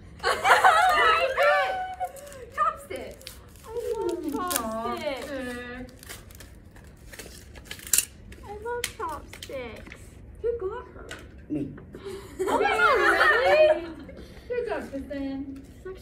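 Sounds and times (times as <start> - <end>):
young people laughing and calling: 0.2 - 2.7, 12.0 - 14.3.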